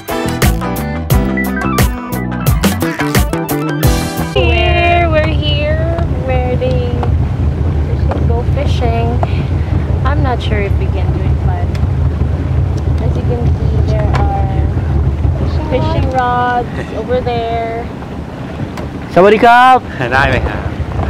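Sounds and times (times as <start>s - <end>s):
speedboat engine rumble: 0.0s - 21.0s
wind buffeting microphone: 4.3s - 21.0s.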